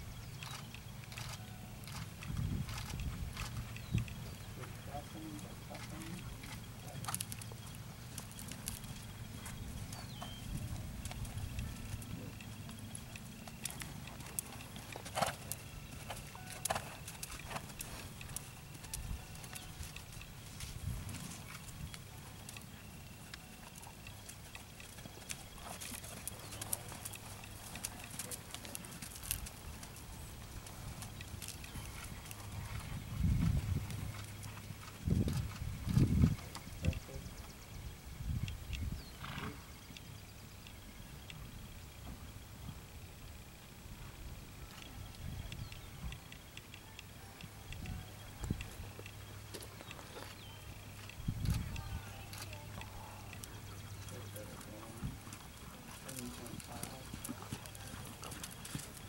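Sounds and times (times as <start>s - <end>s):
horse hooves trotting on sand: 0.0s - 37.8s, 38.4s - 59.0s.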